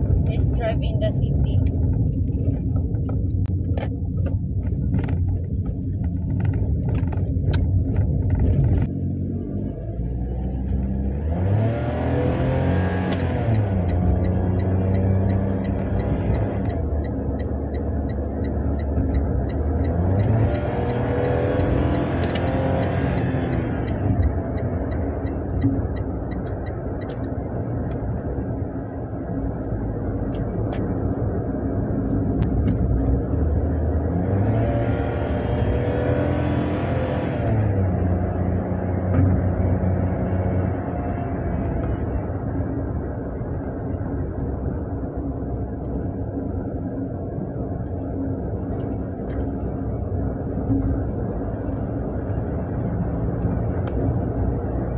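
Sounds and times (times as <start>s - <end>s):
car engine accelerating: 0.0s - 54.9s
road noise inside car: 0.0s - 54.9s.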